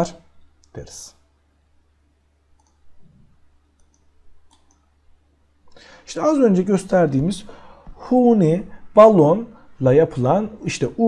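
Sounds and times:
faint low hum: 0.0 - 11.0
computer mouse clicks: 2.6 - 2.9, 3.7 - 4.9.

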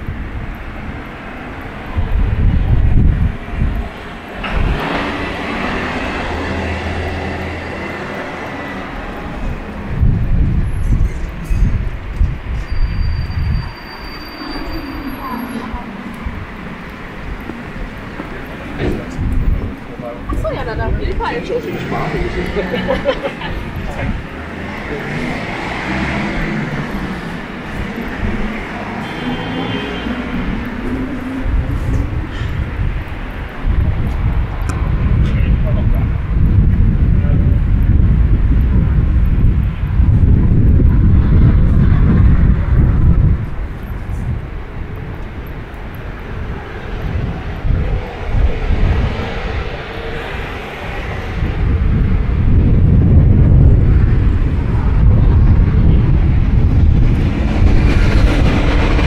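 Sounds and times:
loud low traffic rumble: 0.0 - 59.0.

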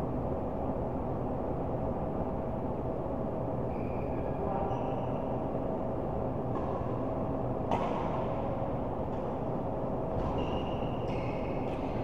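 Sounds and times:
badminton hall background noise: 3.6 - 12.0
racket striking shuttlecock: 7.7 - 8.4
shoe squeak on court: 10.2 - 11.8.

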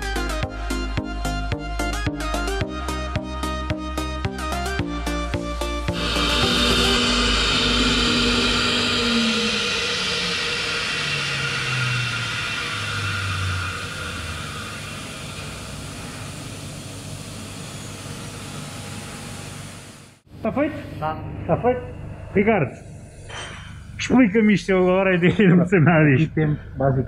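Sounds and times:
steady rush of air: 5.6 - 17.7.

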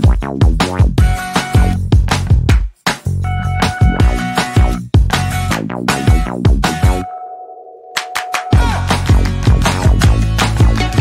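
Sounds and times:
background music with beat: 0.0 - 7.2, 7.9 - 11.0
steady ringing sonar-like tone: 7.0 - 8.5.

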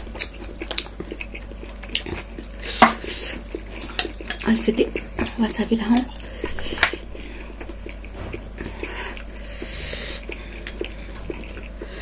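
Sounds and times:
close chewing and wet mouth sounds: 0.0 - 12.0.

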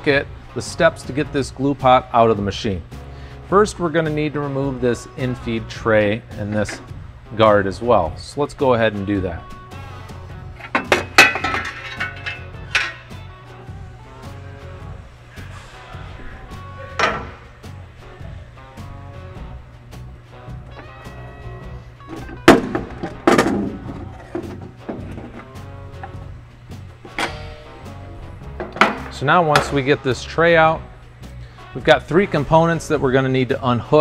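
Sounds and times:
background music: 0.0 - 34.0
sharp knocks and clunks: 28.5 - 29.8.

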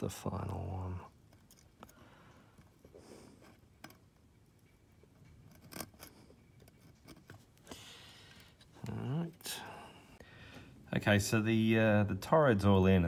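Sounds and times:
metal tweezers clicking and scraping: 1.2 - 7.6.

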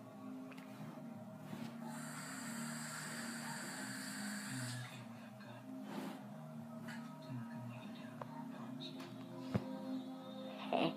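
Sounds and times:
background music: 0.0 - 10.9
child breathing out a hiss: 1.9 - 4.9.

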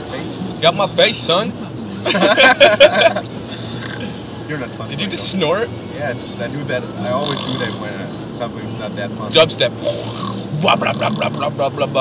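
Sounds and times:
car cabin drone: 0.0 - 12.0.

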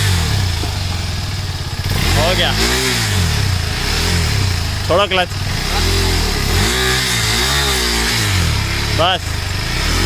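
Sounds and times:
motorcycle engine revving: 0.0 - 10.0.

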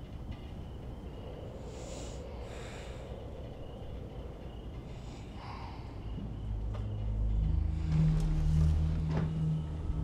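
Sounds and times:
steady low hum: 0.0 - 10.0
low rumbling drone: 0.9 - 10.0.

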